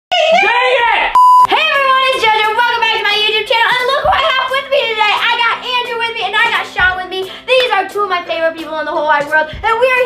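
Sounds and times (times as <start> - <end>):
high electronic bleep: 1.2 - 1.5.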